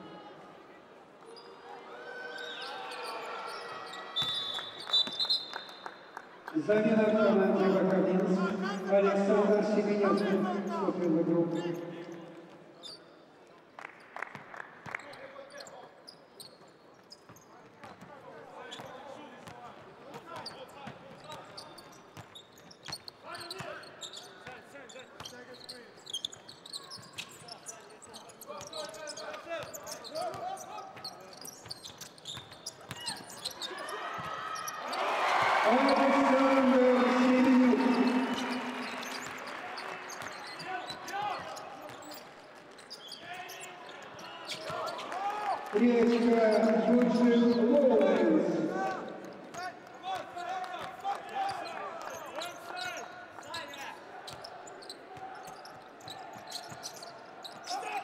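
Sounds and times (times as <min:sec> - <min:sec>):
sharp court noises: 0:14.3 - 0:58.0
crowd cheering: 0:33.8 - 0:41.6, 0:44.5 - 0:49.4.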